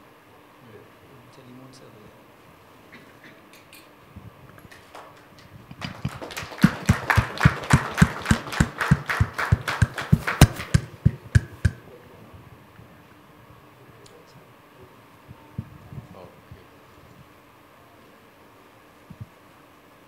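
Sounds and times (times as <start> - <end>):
loud close claps: 4.7 - 11.8
small group applauding: 4.7 - 11.8.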